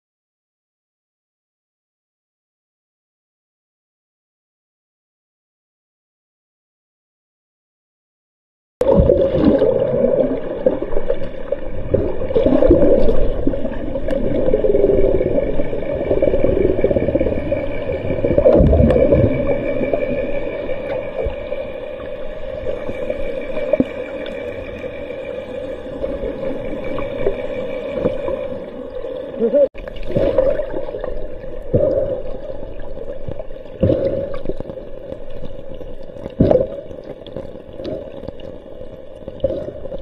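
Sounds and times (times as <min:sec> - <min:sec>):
underwater water rushing and bubbling: 0:08.8 - 0:40.0
faint steady hum: 0:08.9 - 0:40.0.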